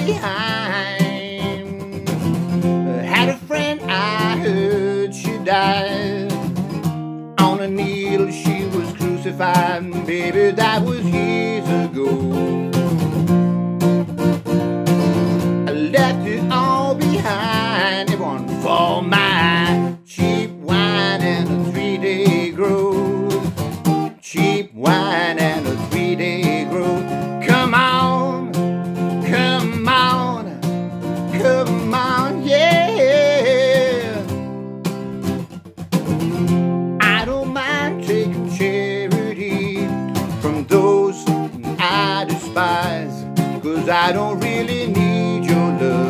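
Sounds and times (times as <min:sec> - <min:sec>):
man singing: 0:00.0 - 0:06.5, 0:07.4 - 0:12.8, 0:15.6 - 0:34.4, 0:37.0 - 0:46.0
strummed acoustic guitar: 0:00.0 - 0:46.0.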